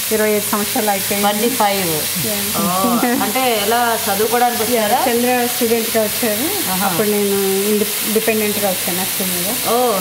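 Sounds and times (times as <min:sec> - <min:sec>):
chicken sizzling in oil: 0:00.0 - 0:02.2, 0:03.2 - 0:10.0
women talking: 0:00.1 - 0:10.0.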